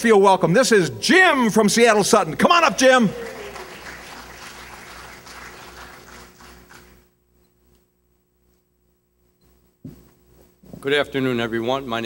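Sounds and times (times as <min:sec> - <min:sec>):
audience applause: 0:02.5 - 0:07.0.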